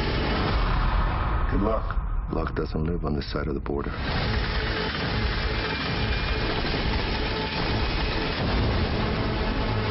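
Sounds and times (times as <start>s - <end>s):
helicopter rotor and engine rumble: 3.2s - 9.9s.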